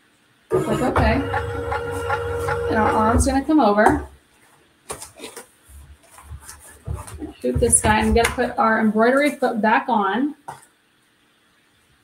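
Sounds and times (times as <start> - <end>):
fabric and hoop knocking and rustling: 5.7 - 9.4
loud knock: 6.9 - 8.5.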